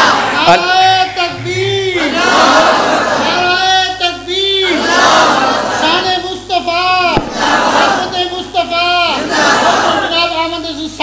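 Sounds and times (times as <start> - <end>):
melodic chanting through loudspeakers: 0.0 - 3.6, 4.2 - 6.2, 7.0 - 10.1
crowd noise: 0.0 - 10.4
sharp knock: 7.2 - 7.5.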